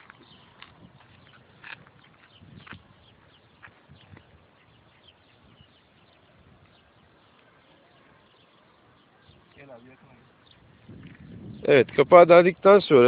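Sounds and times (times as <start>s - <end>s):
faint footsteps on pavement: 0.0s - 13.0s.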